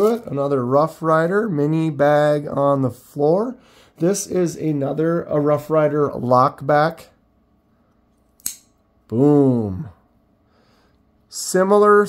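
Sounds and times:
folding knife blade snapping open: 0:08.4 - 0:08.7.

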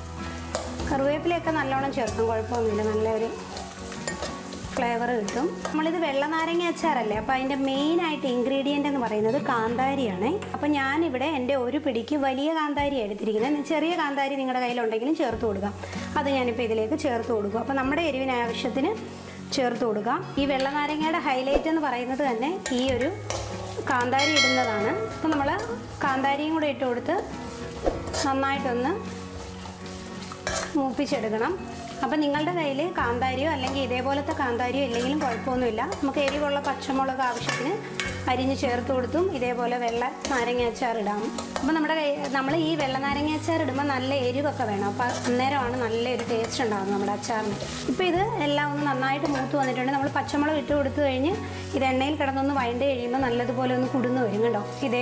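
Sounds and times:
oil sizzling: 0:00.0 - 0:12.4, 0:13.0 - 0:55.0
background music: 0:00.0 - 0:55.0
metal spoon scraping a pan: 0:02.0 - 0:06.0, 0:22.1 - 0:26.2, 0:27.1 - 0:49.8
woman speaking: 0:30.7 - 0:55.0.

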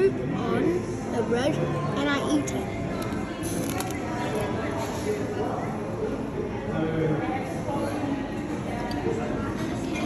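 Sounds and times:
hubbub of people talking: 0:00.0 - 0:10.0.

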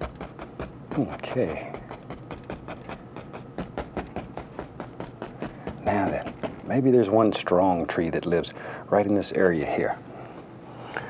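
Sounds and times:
paintbrush tapping on canvas: 0:00.0 - 0:06.9.

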